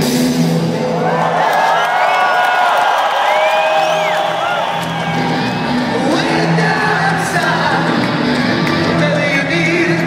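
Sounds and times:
live rock band playing: 0:00.0 - 0:01.1, 0:04.9 - 0:10.0
crowd cheering: 0:00.4 - 0:10.0
whoops and whistles: 0:03.2 - 0:05.2.

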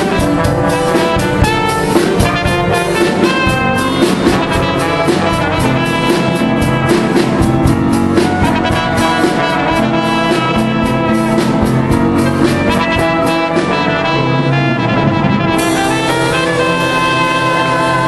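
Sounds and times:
marching brass horn melody: 0:00.0 - 0:18.0
steady drum beat: 0:00.0 - 0:18.0.

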